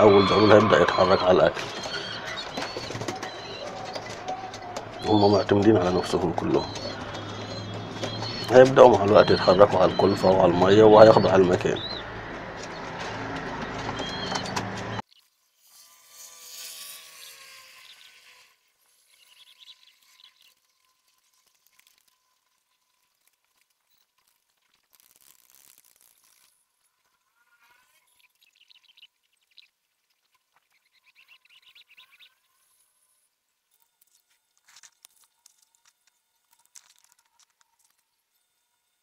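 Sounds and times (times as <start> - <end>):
pigeons cooing: 0.0 - 15.0.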